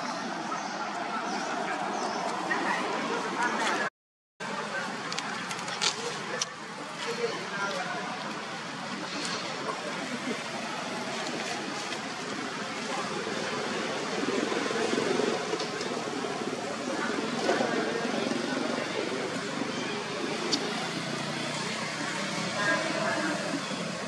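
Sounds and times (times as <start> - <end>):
distant indistinct voices: 0.0 - 24.0.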